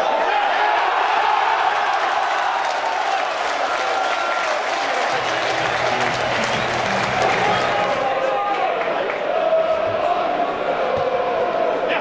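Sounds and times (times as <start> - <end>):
crowd cheering and applauding: 0.6 - 10.2.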